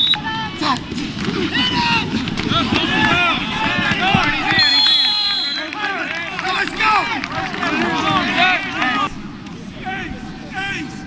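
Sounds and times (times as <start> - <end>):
dense busy background sound: 0.0 - 11.0.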